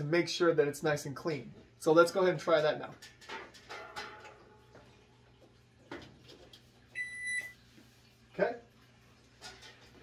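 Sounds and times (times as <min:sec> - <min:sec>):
microwave electronic beep: 0:07.0 - 0:07.6.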